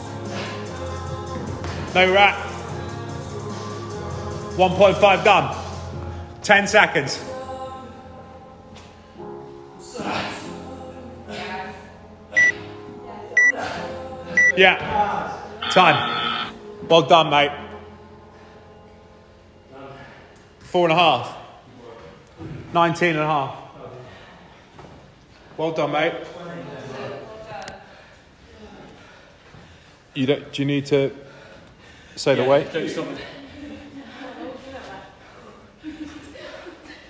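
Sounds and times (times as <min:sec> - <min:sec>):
background music: 0:00.0 - 0:24.2.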